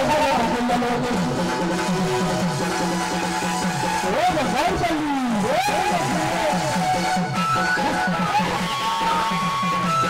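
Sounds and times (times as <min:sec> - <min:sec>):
festival music: 0:00.0 - 0:10.0.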